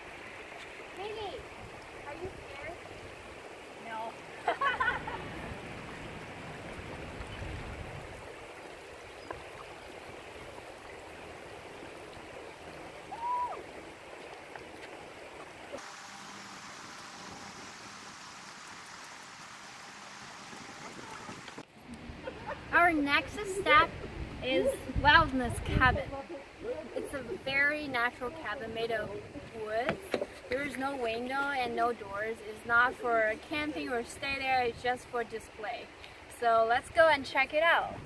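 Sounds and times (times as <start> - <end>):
river water rushing: 0.0 - 36.8.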